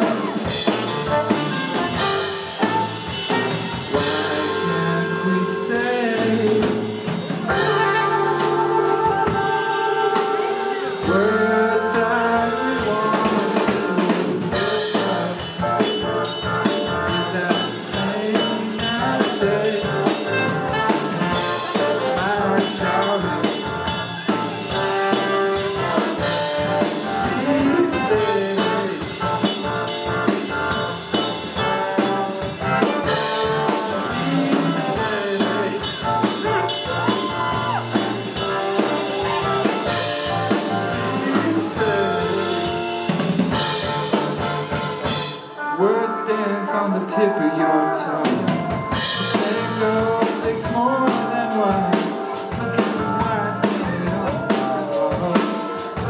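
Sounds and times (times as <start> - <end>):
drum kit: 0.0 - 45.8, 48.2 - 56.0
keyboard: 0.0 - 56.0
trombone and saxophone: 0.0 - 56.0.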